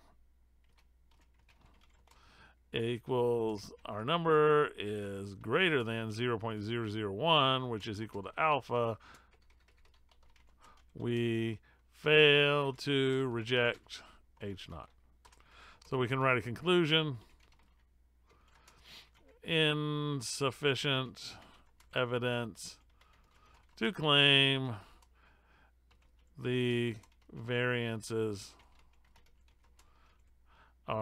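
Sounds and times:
faint typing on keyboard: 0:00.0 - 0:19.6, 0:20.2 - 0:31.0.

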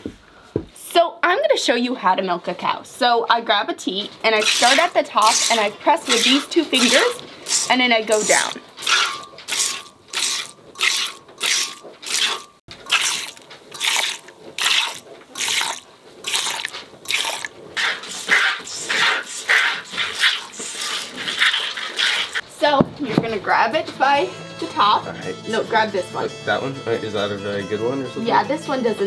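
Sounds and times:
milk squirting: 0:04.3 - 0:22.4.

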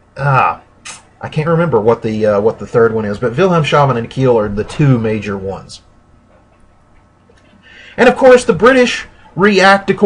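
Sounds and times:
person breathing in: 0:07.5 - 0:08.0.

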